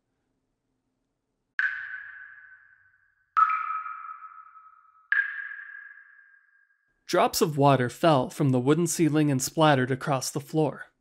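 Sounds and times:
water drops plinking: 1.6 - 6.8.

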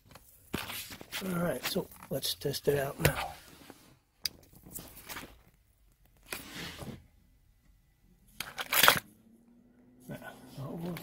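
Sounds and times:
rustling and scraping handling noise: 0.0 - 7.2.

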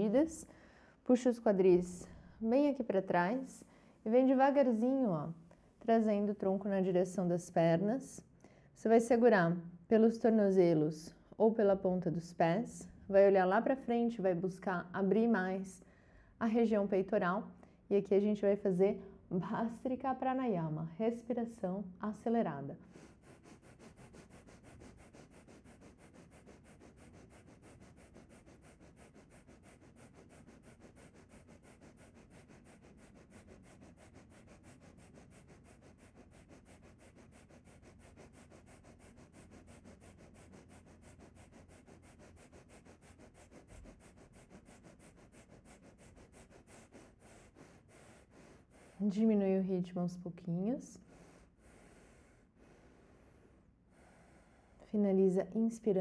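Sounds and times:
rapid forceful nose breathing: 0.0 - 1.0, 22.8 - 49.4, 51.0 - 54.9.

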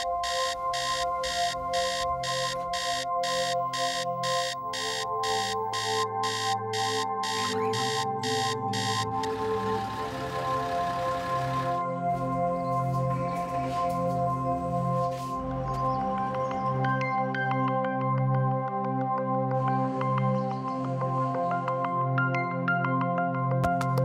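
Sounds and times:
phone alarm beeping: 0.0 - 11.8
background music: 0.0 - 24.0.

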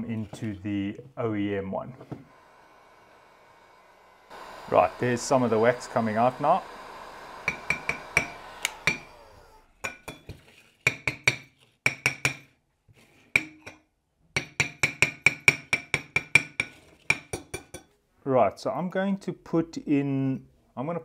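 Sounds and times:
heat gun blowing: 2.1 - 9.8
metal tapping on ceramic plate: 14.4 - 17.9.

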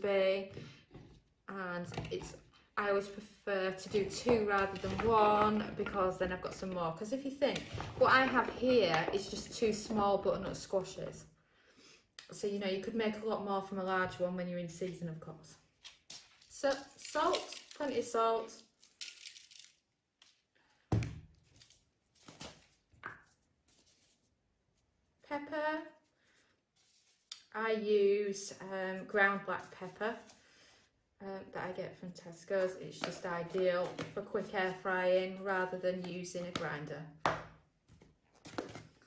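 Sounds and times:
kitchen items on chopping board: 0.4 - 11.0, 32.5 - 34.9, 35.7 - 39.0.

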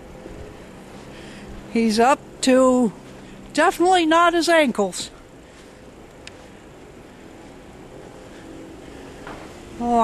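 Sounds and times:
low uneven rumble: 0.0 - 10.0.

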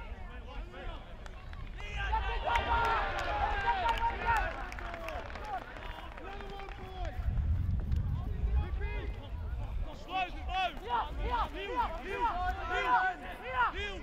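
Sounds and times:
people shouting and calling out: 0.0 - 7.2, 8.2 - 14.0
low rumble: 7.2 - 11.4.

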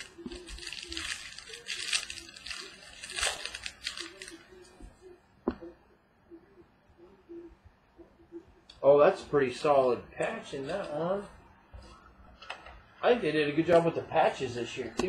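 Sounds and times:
plastic wrapping tearing and crinkling: 0.0 - 4.5.

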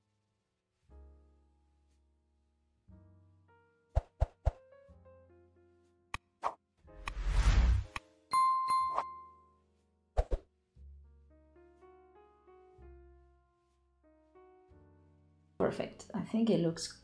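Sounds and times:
soft background music: 0.0 - 17.0
quick pops and clicks: 6.2 - 8.1
whoosh: 7.0 - 8.0
bell ding: 8.3 - 9.5.

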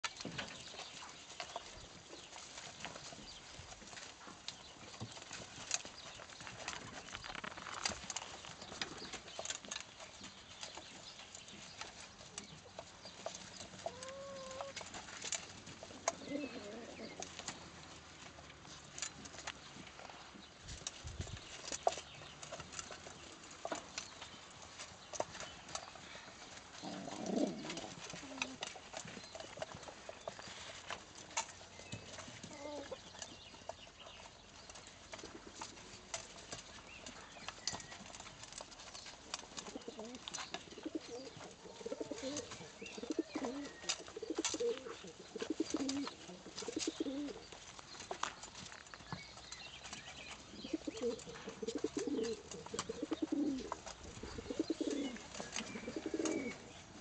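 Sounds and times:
beaks pecking food: 0.0 - 57.0
pigeons cooing: 12.8 - 17.6, 25.8 - 31.3, 39.5 - 47.7, 49.9 - 57.0.

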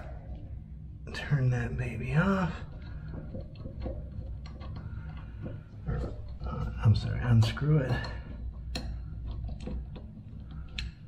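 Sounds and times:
steady low hum: 0.0 - 11.0
allen wrench ticks and scrapes: 2.6 - 11.0.

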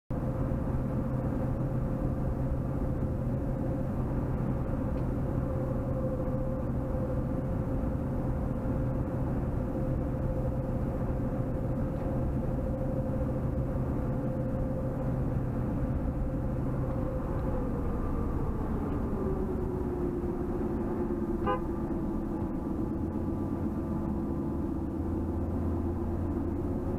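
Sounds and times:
car engine and tyre drone: 0.1 - 26.9.

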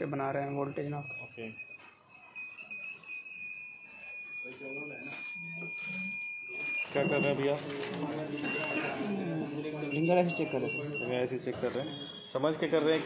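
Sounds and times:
multimeter continuity beep: 0.0 - 12.7.

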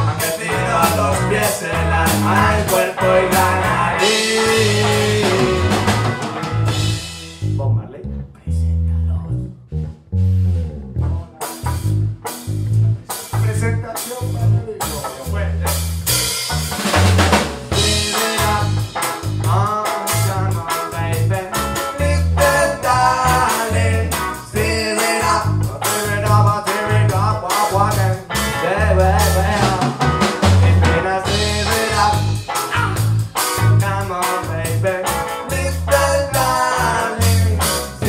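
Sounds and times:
person rapping or singing: 0.0 - 5.8, 7.6 - 9.4, 12.6 - 15.8, 19.4 - 38.0
live rock band playing: 0.0 - 7.6, 10.4 - 38.0.

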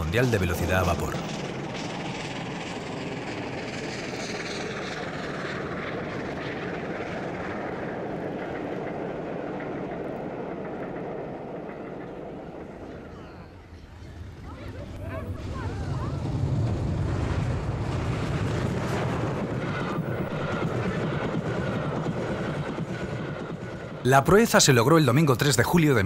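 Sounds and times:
steam locomotive running past: 0.0 - 26.0.

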